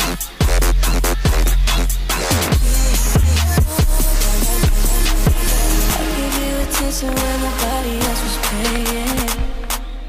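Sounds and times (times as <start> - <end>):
song with a beat: 0.0 - 10.0.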